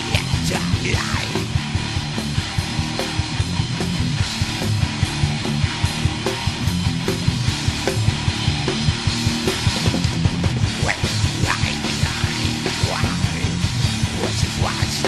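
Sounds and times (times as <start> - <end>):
metal band playing: 0.0 - 15.0.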